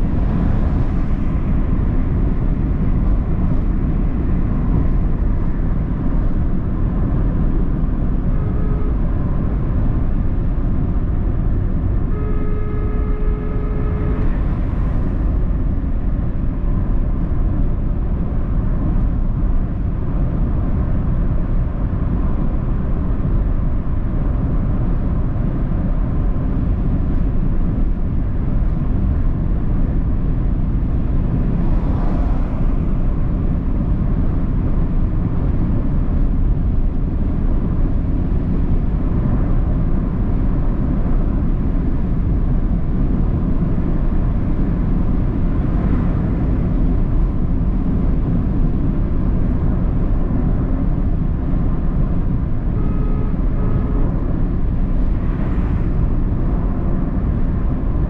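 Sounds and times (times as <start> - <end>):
car engine and tyre rumble: 0.0 - 58.0.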